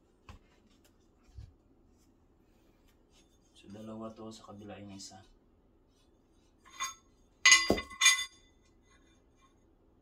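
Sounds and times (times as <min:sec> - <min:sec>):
metal plates clinking: 0:06.7 - 0:09.1.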